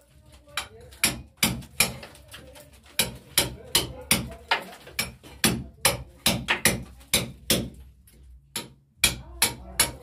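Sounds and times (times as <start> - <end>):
brick chipping: 0.2 - 7.8, 8.5 - 10.0
hammer striking steel chisel: 5.0 - 7.8, 8.5 - 10.0.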